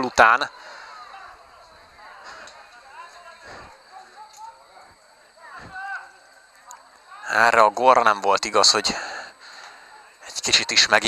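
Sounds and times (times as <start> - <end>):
distant shouts and calls: 0.0 - 11.0.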